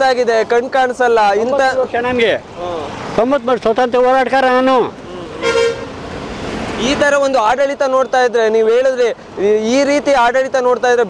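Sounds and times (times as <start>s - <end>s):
road traffic noise: 0.0s - 11.0s
vehicle horn toot: 5.4s - 6.0s.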